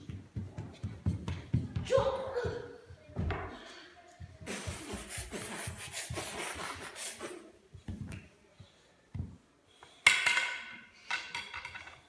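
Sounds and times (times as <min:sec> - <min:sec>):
stick clattering on tiled floor: 0:10.0 - 0:12.0.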